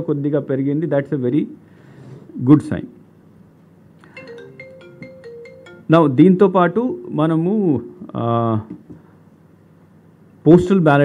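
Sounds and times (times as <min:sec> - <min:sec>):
mobile phone ringtone: 0:04.0 - 0:06.2.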